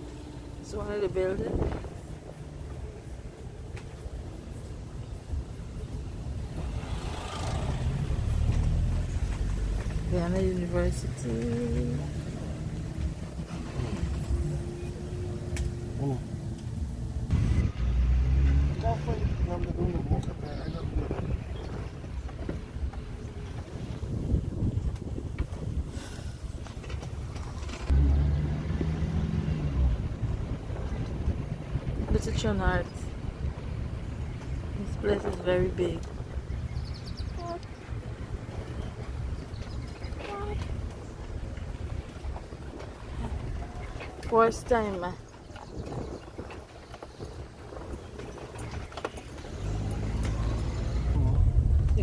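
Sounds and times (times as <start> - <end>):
motor vehicle rumble: 0.0 - 52.0.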